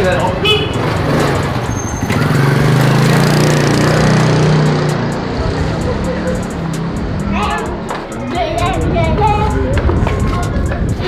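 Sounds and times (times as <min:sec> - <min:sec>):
small motorcycle passing: 0:00.1 - 0:09.7.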